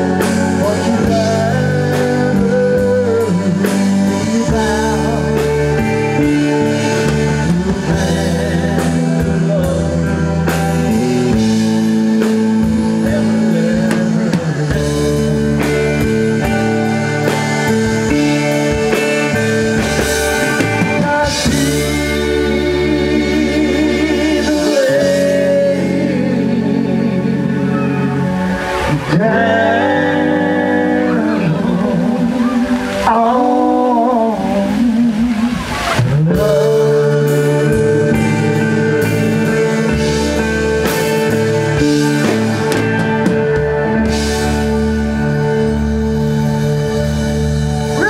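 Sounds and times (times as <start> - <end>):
live rock band playing: 0.0 - 48.0.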